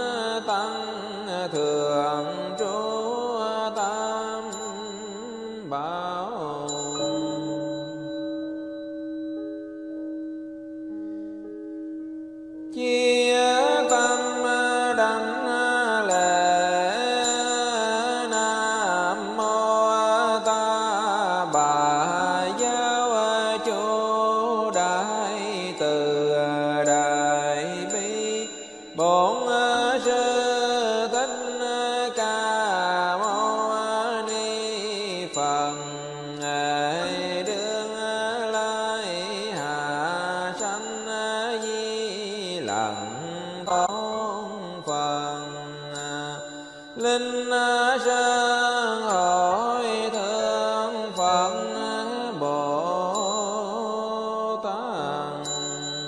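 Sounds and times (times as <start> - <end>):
chanting with long gliding notes: 0.0 - 56.0.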